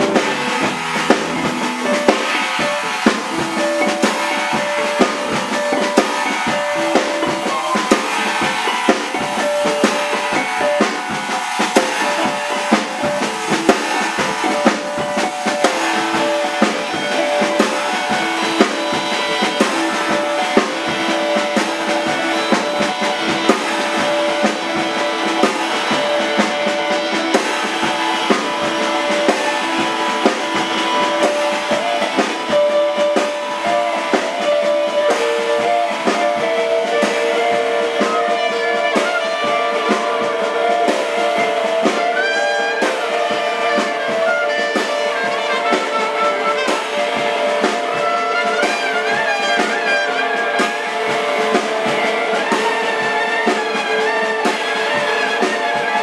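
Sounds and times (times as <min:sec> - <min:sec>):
drum kit: 0:00.0 - 0:56.0
electric guitar jazz: 0:00.0 - 0:56.0.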